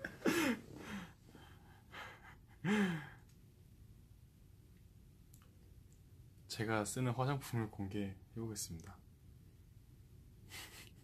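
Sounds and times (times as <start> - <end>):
man breathing: 0.2 - 3.3.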